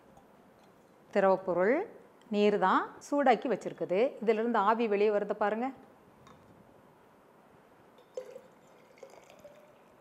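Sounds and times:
water splashing in steel cup: 8.0s - 10.0s.

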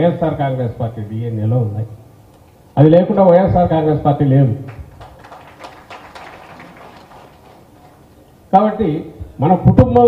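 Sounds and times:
faint room noise: 3.9s - 9.6s.

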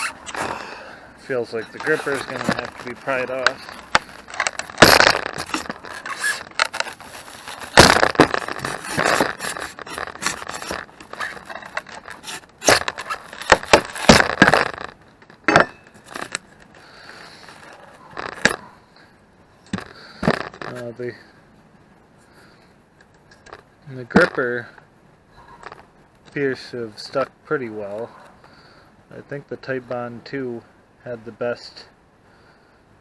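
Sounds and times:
glue crackling and foam tearing: 0.0s - 0.6s, 1.4s - 15.0s
metal scraping against wood: 0.0s - 18.8s
sharp cracks: 1.5s - 18.7s.

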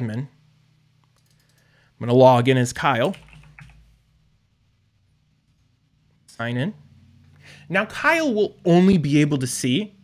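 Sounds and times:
computer keyboard keystrokes: 1.0s - 1.7s, 3.1s - 3.8s.

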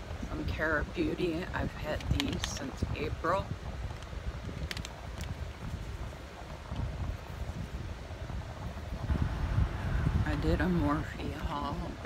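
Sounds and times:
microphone handling noise: 0.0s - 11.8s.

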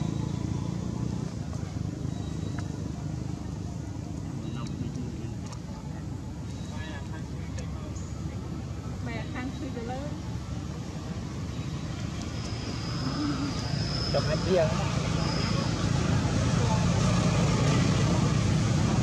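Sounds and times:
faint wavering calls: 11.4s - 16.0s
thin high whine: 11.6s - 16.3s.

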